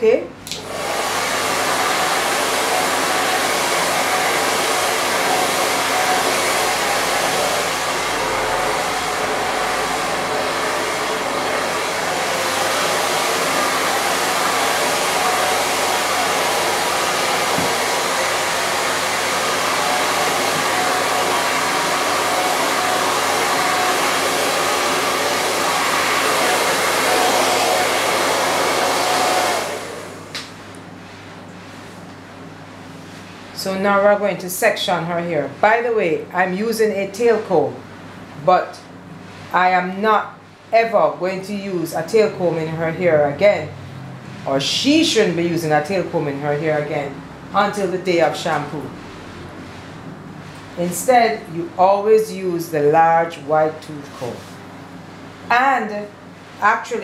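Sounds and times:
hair dryer blowing: 0:00.4 - 0:30.6, 0:41.3 - 0:49.0.

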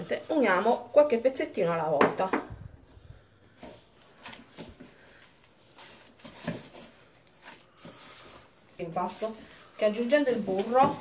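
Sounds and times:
dough squishing: 0:03.3 - 0:11.0
plastic gloves rustling: 0:03.4 - 0:11.0.

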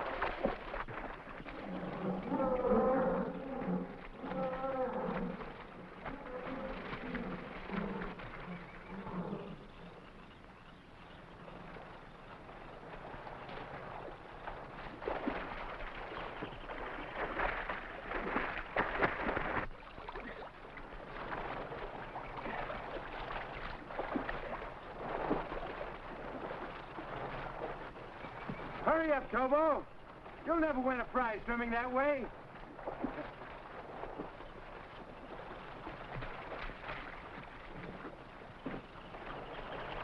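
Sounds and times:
water splashing from swimming: 0:00.0 - 0:40.0.

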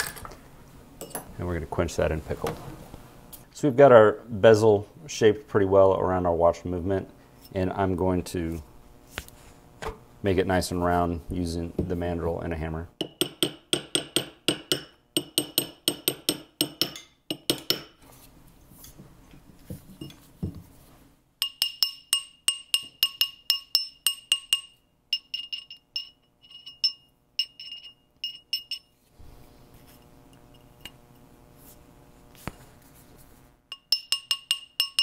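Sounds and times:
hammer tapping metal: 0:13.0 - 0:18.0, 0:21.4 - 0:28.9, 0:33.7 - 0:35.0.

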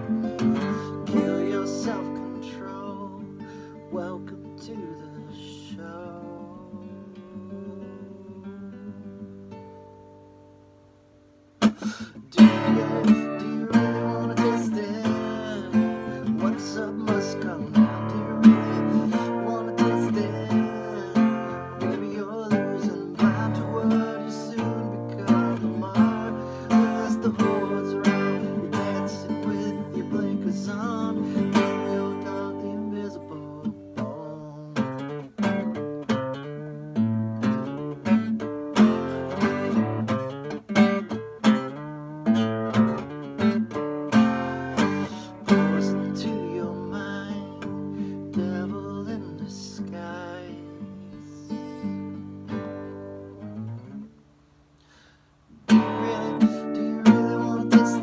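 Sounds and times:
acoustic guitar strummed hard: 0:00.0 - 0:58.0.

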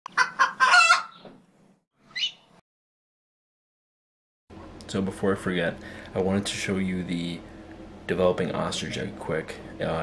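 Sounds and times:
rooster crowing: 0:00.2 - 0:01.2.

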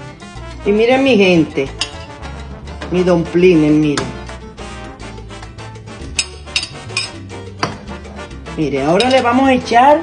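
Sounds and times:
latin music: 0:00.0 - 0:10.0
spatula clinking on pot: 0:01.7 - 0:02.2, 0:06.2 - 0:07.8, 0:08.9 - 0:09.4.

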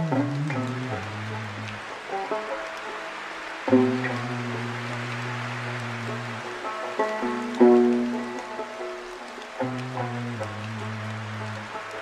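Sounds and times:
rain hissing: 0:00.0 - 0:12.0
slow banjo playing: 0:00.0 - 0:12.0.

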